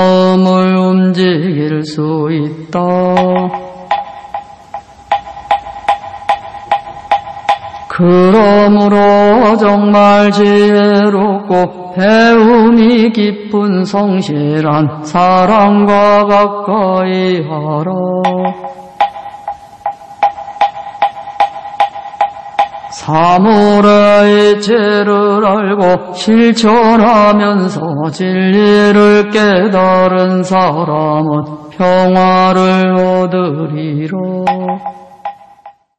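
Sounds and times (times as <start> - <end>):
wooden fish knocking: 3.2 - 7.9
wooden knocker strikes: 3.2 - 8.0, 18.2 - 23.0, 34.4 - 35.9
ringing tone: 18.3 - 23.0, 34.5 - 35.9.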